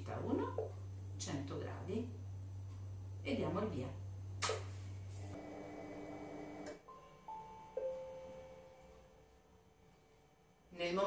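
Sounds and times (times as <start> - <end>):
sharp click: 4.4 - 4.7
soft musical tones: 6.8 - 9.5.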